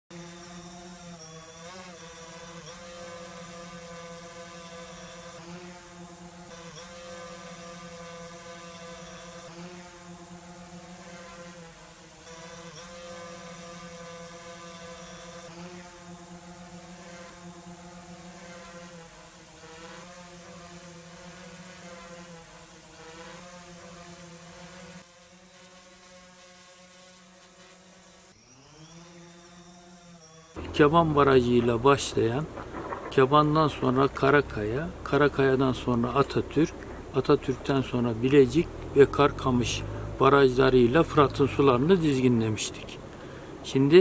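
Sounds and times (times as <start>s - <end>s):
drone propeller hum: 0.1s - 44.0s.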